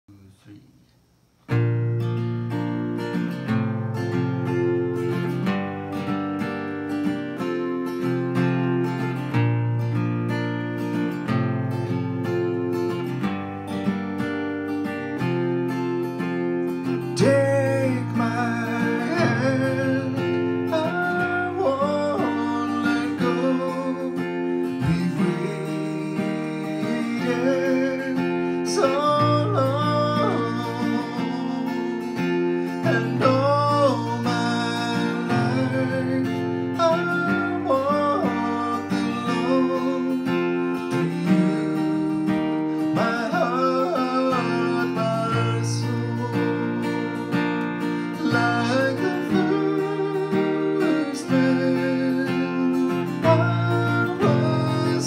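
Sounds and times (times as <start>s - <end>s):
strummed acoustic guitar: 0.1s - 55.0s
man singing: 16.8s - 55.0s.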